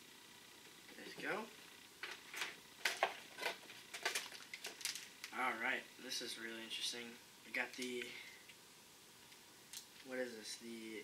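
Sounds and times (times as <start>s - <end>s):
cardboard and plastic crinkling: 2.0s - 5.4s.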